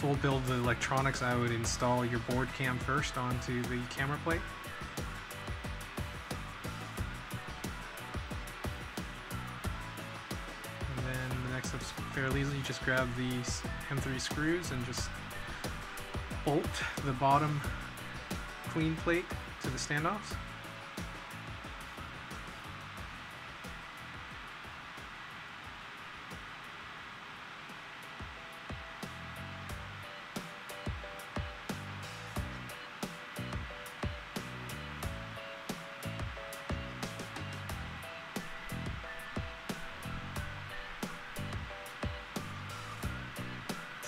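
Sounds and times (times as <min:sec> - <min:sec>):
steady hiss: 0:00.0 - 0:44.0.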